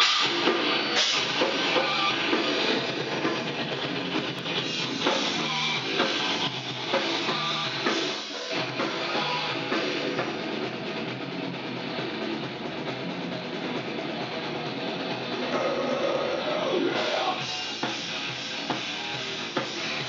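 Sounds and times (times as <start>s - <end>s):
distorted electric guitar: 0.0s - 20.0s
heavy drum strokes: 0.0s - 20.0s.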